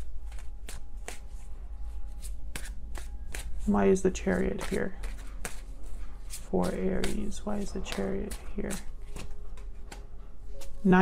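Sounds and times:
cards being shuffled: 0.0s - 1.5s, 2.1s - 10.9s.

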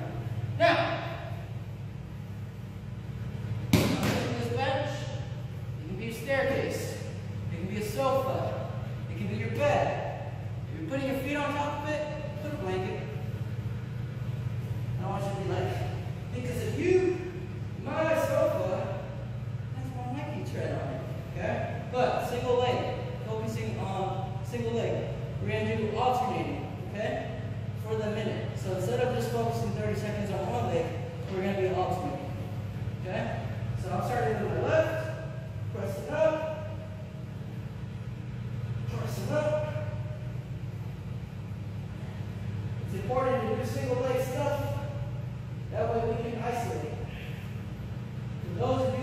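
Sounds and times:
steady low hum: 0.0s - 49.0s.

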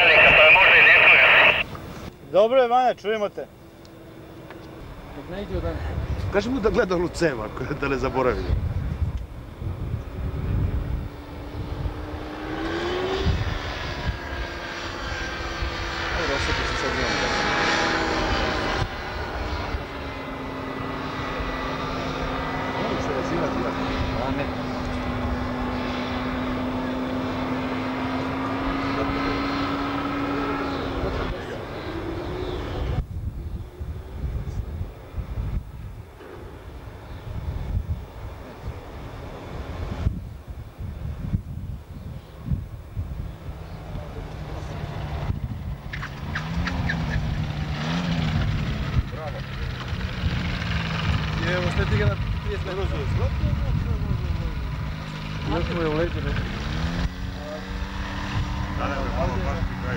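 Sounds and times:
wind buffeting microphone: 8.2s - 14.6s, 32.5s - 55.4s, 56.0s - 59.9s
motorized hang glider droning: 42.2s - 59.9s.

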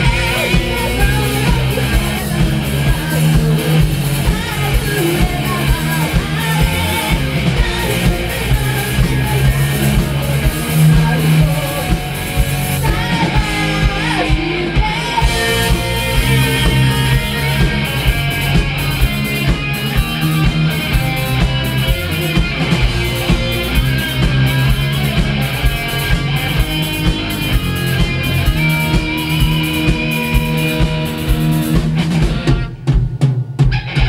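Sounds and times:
drum kit beat: 0.0s - 34.0s
rock band playing: 0.0s - 34.0s.

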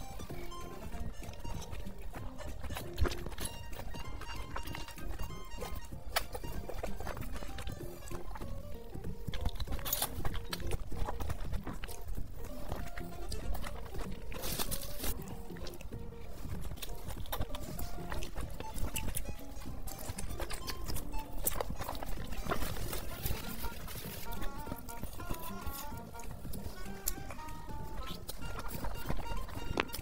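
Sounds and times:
background music: 0.0s - 30.0s
wet chewing and slurping: 0.0s - 30.0s.

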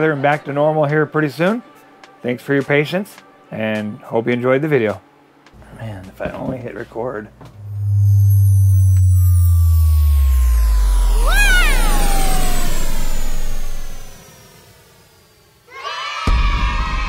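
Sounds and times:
high gliding tones: 5.6s - 15.7s
deep synthetic tone sliding down: 7.3s - 15.7s
swooping note: 7.3s - 15.7s.

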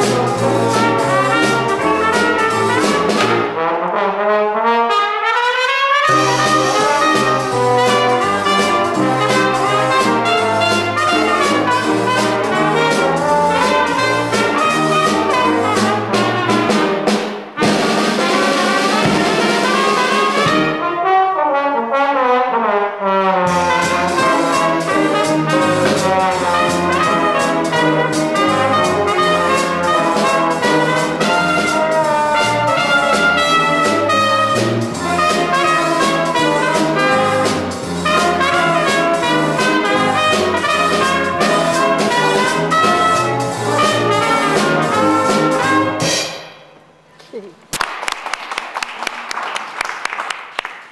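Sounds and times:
saxophone: 0.0s - 3.5s, 5.5s - 16.9s, 23.5s - 46.1s
bass: 0.0s - 3.6s, 6.1s - 20.8s, 23.5s - 46.2s
drum kit: 0.0s - 3.7s, 6.0s - 21.0s, 23.5s - 46.8s
jazz band playing: 0.0s - 46.6s
trombone: 0.0s - 46.6s
trumpet: 0.0s - 46.6s.

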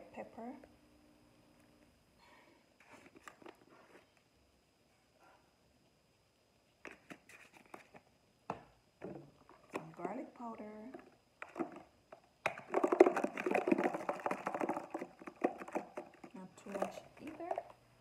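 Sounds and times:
spice containers rustling and clicking: 2.8s - 4.0s, 6.8s - 8.1s, 9.0s - 10.3s, 10.9s - 17.8s.

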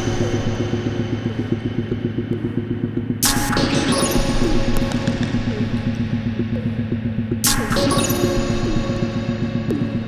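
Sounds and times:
low synthesizer drone: 0.0s - 10.0s
synthesizer bass pulse: 0.0s - 10.0s.

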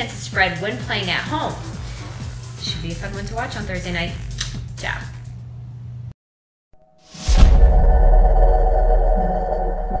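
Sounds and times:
deep bass: 2.7s - 5.4s
synthesized drone: 7.6s - 10.0s.

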